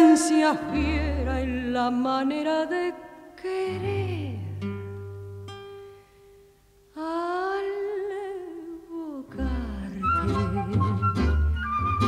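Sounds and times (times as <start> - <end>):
held note with vibrato: 0.0 - 1.6
tango orchestra music: 9.6 - 12.0.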